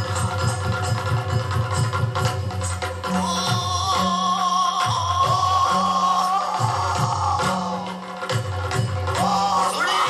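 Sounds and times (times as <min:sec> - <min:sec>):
sharp percussive strikes: 0:00.0 - 0:10.0.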